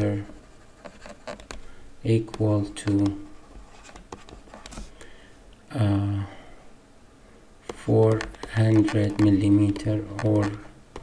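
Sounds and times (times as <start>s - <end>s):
stylus scratching on screen: 0.0s - 1.6s, 7.7s - 10.7s
stylus tapping on tablet: 7.7s - 11.0s.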